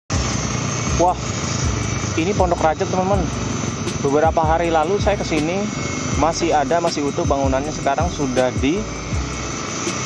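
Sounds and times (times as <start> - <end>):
engine running with hiss: 0.1 - 10.0.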